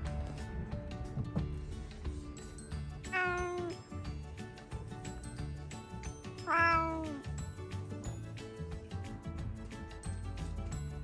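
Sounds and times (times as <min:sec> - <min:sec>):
cat meowing: 0:03.1 - 0:03.8, 0:06.4 - 0:07.3.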